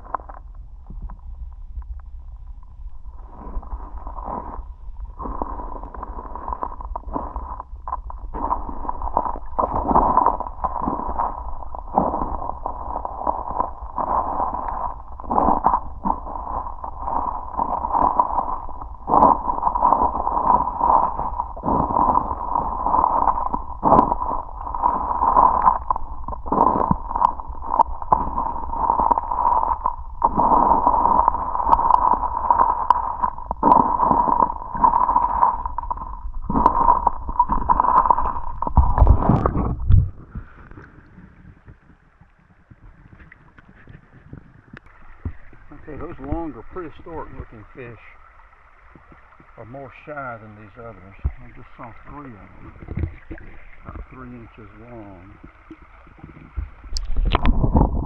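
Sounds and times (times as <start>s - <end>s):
low underwater rumble: 0.0s - 58.0s
muffled underwater gurgling: 0.0s - 58.0s.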